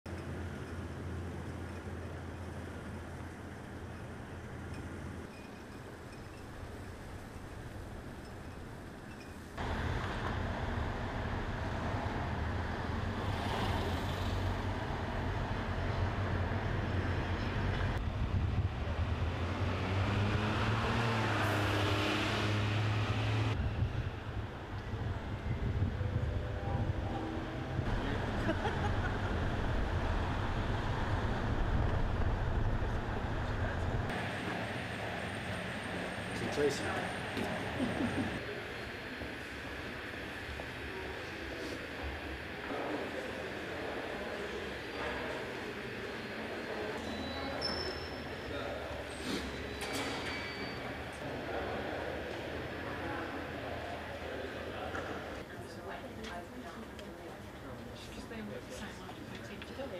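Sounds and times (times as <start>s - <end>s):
street traffic passing: 0.1s - 59.9s.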